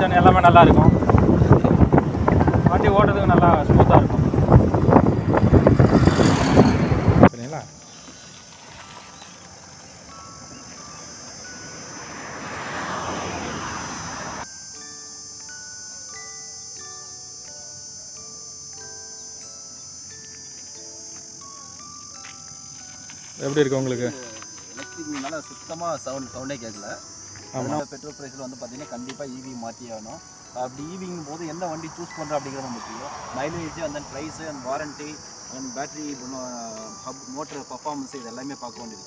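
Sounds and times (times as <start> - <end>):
wind buffeting microphone: 0.0 - 7.4
crickets chirring: 0.0 - 39.0
quiet background music: 14.7 - 39.0.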